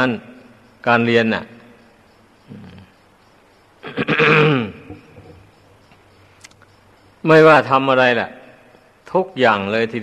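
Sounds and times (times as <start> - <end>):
man coughing: 3.8 - 4.8.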